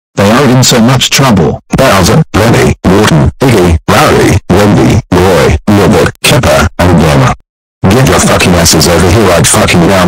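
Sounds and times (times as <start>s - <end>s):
distorted voice yelling: 0.2s - 10.0s.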